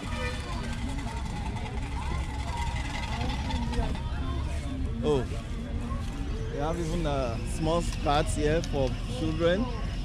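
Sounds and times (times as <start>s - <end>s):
chatter of passers-by: 0.0s - 10.0s.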